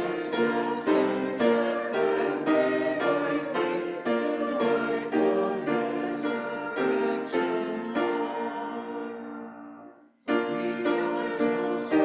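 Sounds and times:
group singing a hymn: 0.0 - 12.0
keyboard accompaniment: 0.0 - 12.0.

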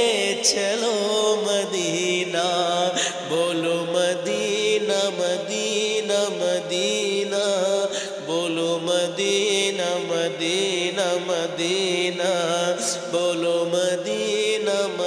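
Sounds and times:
man singing into a microphone: 0.0 - 15.0.

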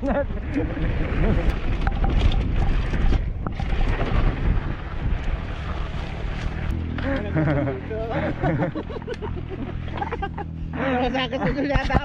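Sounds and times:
wind buffeting microphone: 0.0 - 6.8
bike rattling and knocking: 1.6 - 7.0.

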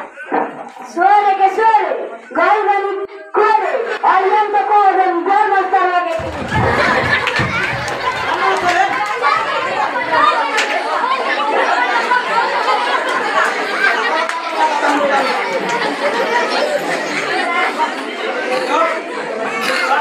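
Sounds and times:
people talking at once: 0.0 - 20.0.

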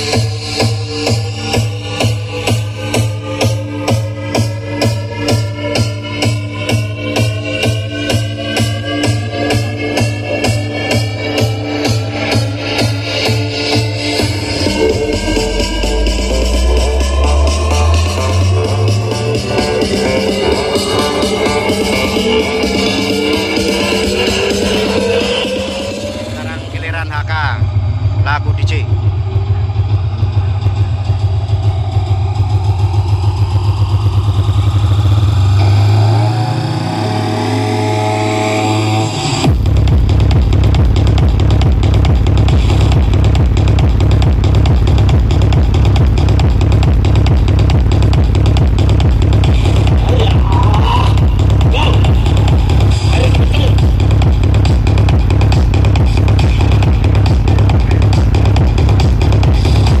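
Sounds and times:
heavy steady bass beat: 0.0 - 60.0
loud electronic dance music: 0.0 - 60.0
rising sweeps: 0.8 - 27.0, 28.9 - 39.5.

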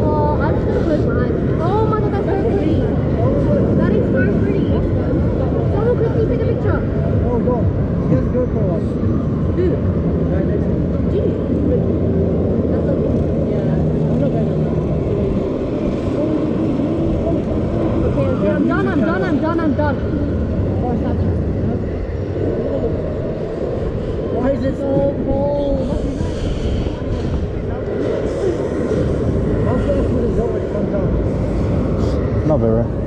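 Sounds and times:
wind rumble on microphone: 0.0 - 33.0
indistinct riders' voices: 9.0 - 33.0.

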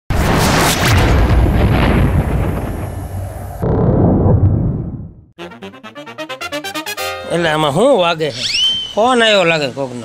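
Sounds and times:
deep boom with hiss: 0.2 - 5.2.

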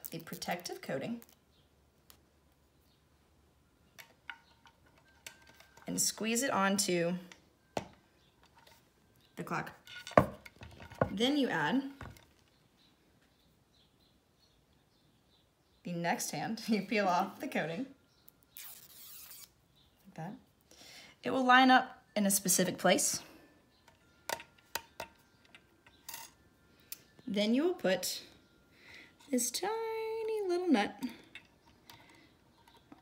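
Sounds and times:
plastic film peeling rasp: 18.5 - 19.6.

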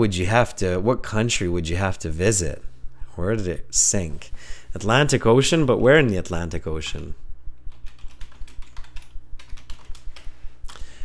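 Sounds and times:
steady low hum: 0.0 - 11.0
keyboard typing: 7.7 - 10.8.

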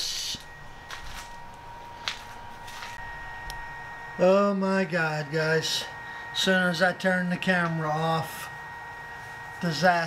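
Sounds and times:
faint high whine: 0.0 - 10.0
soft footfalls: 2.0 - 3.0.

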